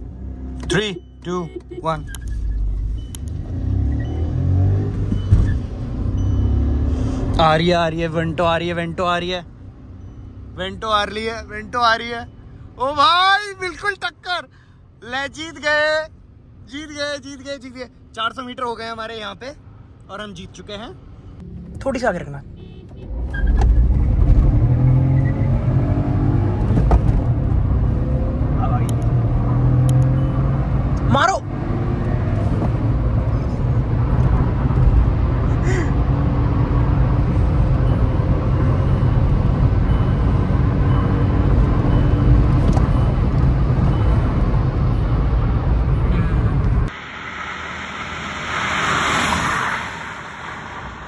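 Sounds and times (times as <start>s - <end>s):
car engine low drone: 0.0s - 11.6s, 23.7s - 51.0s
road and tyre noise: 0.0s - 51.0s.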